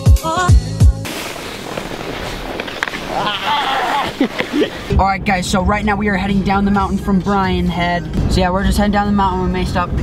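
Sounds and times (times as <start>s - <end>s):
snowboard scraping over snow: 1.0s - 5.0s.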